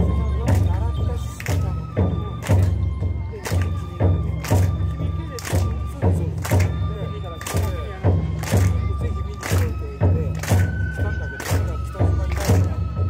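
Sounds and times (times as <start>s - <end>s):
bamboo flute held notes: 0.0s - 13.0s
taiko drum beats: 0.0s - 13.0s.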